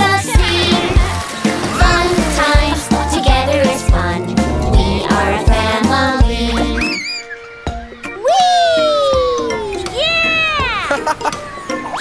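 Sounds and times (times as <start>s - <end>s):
light children's music: 0.0s - 12.0s
cartoon wheee glide: 1.8s - 7.5s.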